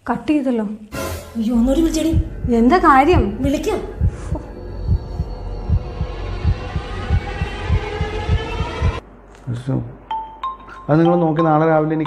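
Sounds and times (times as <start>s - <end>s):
sustained droning tone: 1.1s - 9.2s
heartbeat thumps: 1.6s - 9.0s.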